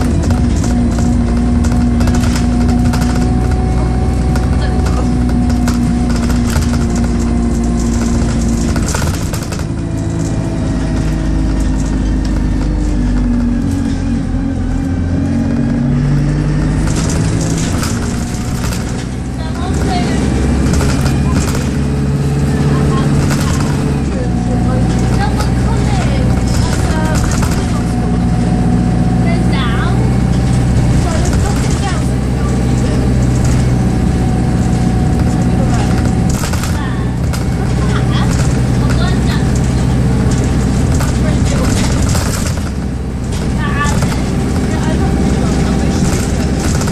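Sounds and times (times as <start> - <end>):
bodywork rattles and knocks: 0.0 - 29.2, 30.0 - 46.9
bus diesel engine: 0.0 - 46.9.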